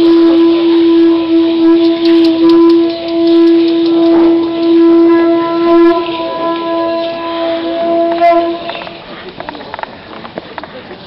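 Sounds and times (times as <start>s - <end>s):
conch shell trumpet blast: 0.0s - 9.2s.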